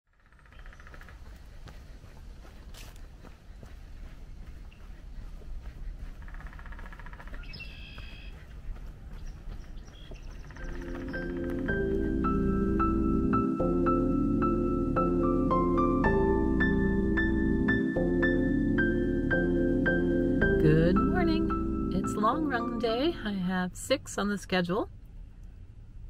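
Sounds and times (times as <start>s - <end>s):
bird calls: 0.1s - 11.9s
low wind rumble: 0.4s - 26.0s
soft keyboard music: 10.5s - 23.3s.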